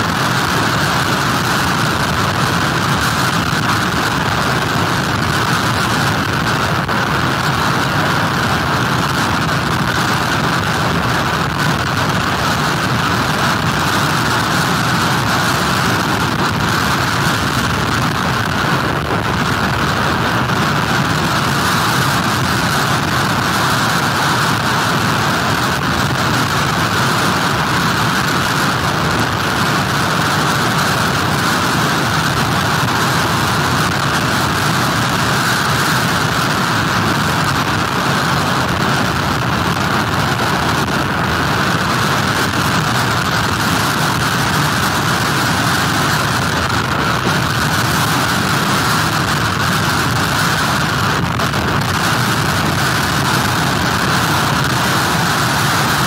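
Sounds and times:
heavy surf: 0.0 - 56.0.

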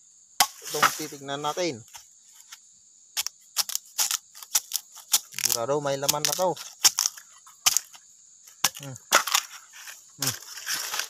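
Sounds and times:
bamboo cracking and splitting: 0.4 - 1.1, 3.2 - 11.0.

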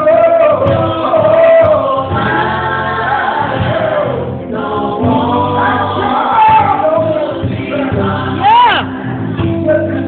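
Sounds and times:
gospel group singing in harmony: 0.0 - 10.0.

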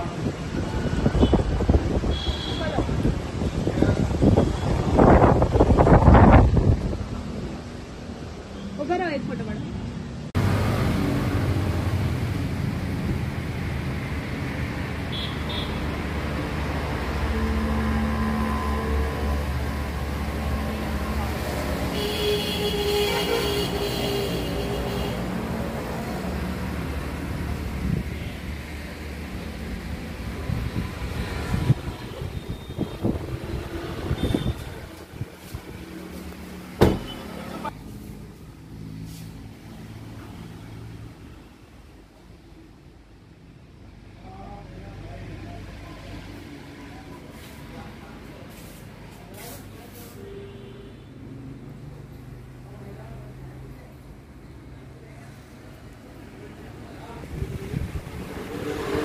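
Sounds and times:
motor vehicle rumble: 0.0 - 44.2, 51.6 - 59.0.

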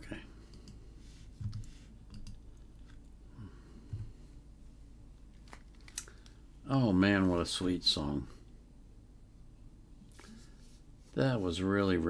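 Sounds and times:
soft humming voice: 0.0 - 4.5.

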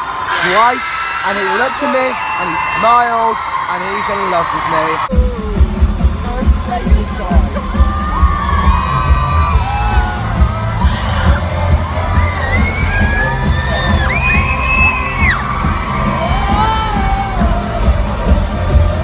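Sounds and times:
bass-heavy pop music: 5.1 - 19.0
crowd singing and shouting: 5.1 - 19.0.

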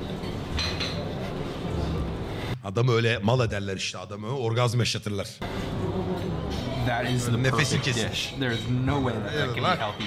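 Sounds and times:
cutlery and dishes clinking: 0.0 - 1.5.

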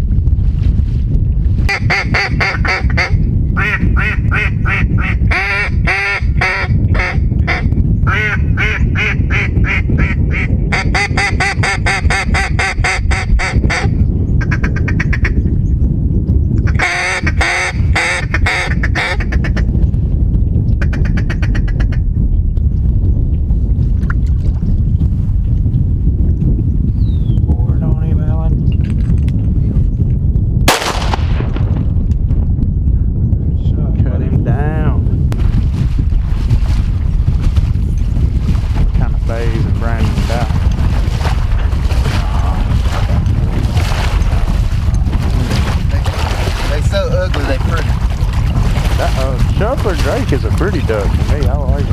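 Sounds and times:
wind rumble on microphone: 0.0 - 51.9
duck call quacking: 16.7 - 19.4.

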